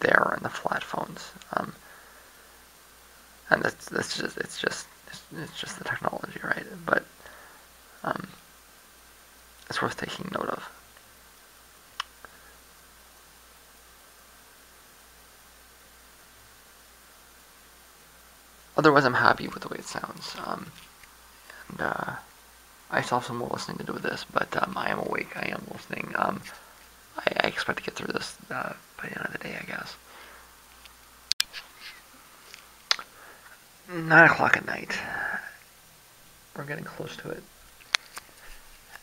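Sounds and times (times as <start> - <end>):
faint hiss: 0.0 - 39.0.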